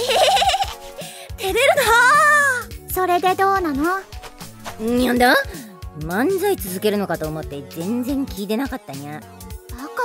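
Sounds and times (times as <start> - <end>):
woman giggling: 0.0 - 0.9
light background music: 0.0 - 10.0
woman speaking: 4.7 - 9.2.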